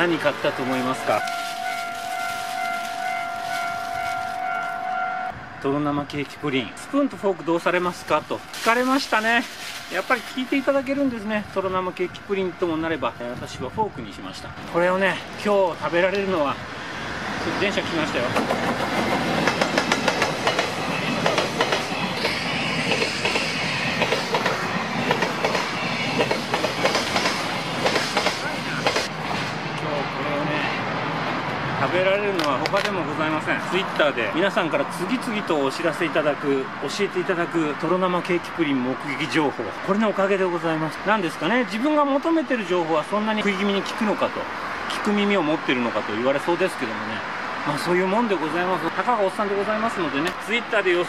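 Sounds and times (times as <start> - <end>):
steady high-pitched tone: 0.0 - 5.4
train wheels clattering on rails: 17.9 - 29.9.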